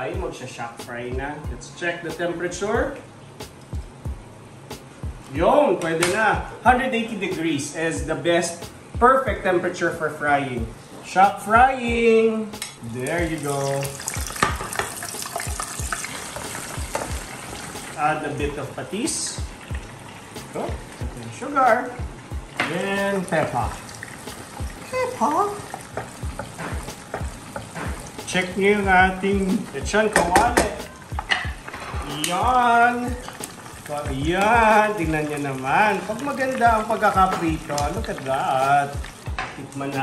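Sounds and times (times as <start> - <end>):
meat sizzling in hot oil: 12.9 - 40.0
wooden spoon scraping a pan: 31.2 - 32.4.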